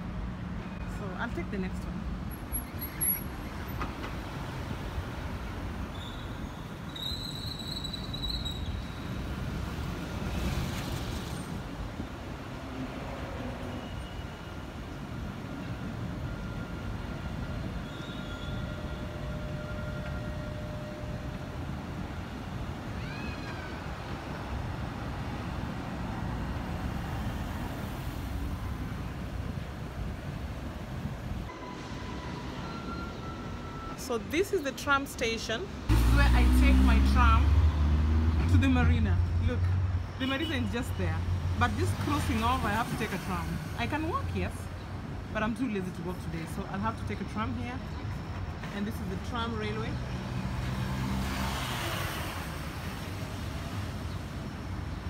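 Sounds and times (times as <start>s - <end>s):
tram running on rails: 0.0s - 40.1s, 40.7s - 55.0s
road traffic with cars passing: 0.0s - 55.0s.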